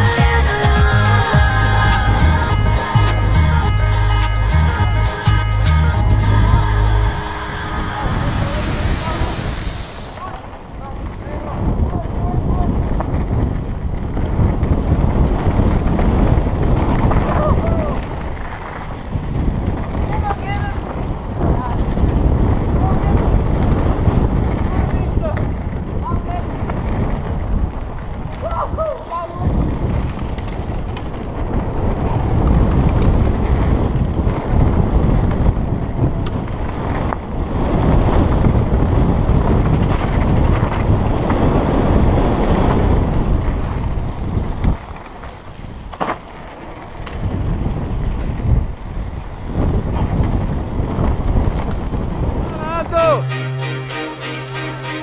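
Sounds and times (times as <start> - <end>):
wind on microphone: 0.0 - 53.2
mountain bike rattling on trail: 10.2 - 52.5
short pitched sounds: 52.8 - 55.0.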